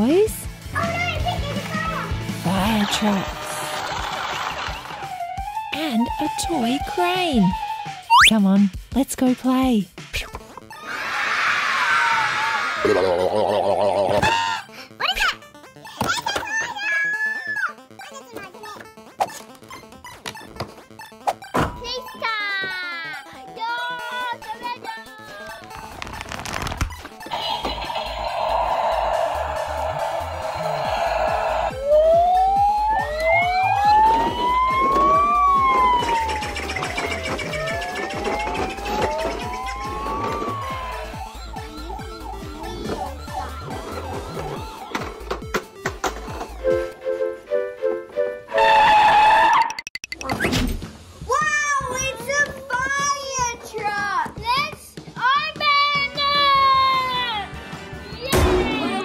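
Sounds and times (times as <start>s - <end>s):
background music with steady beat: 0.0s - 3.1s, 4.8s - 10.8s, 17.6s - 48.6s
toy siren wailing: 27.2s - 44.8s.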